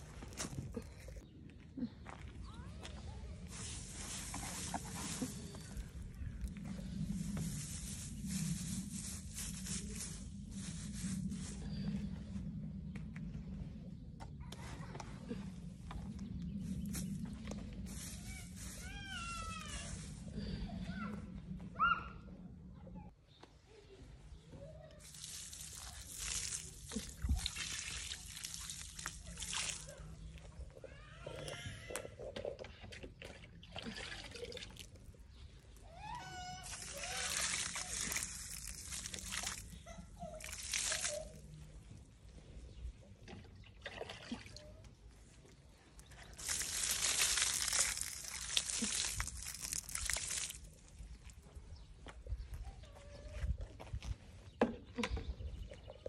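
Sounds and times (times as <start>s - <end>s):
water pouring onto soil: 3.4s - 12.2s, 16.6s - 20.6s, 25.0s - 30.6s, 33.6s - 41.6s, 46.0s - 51.4s.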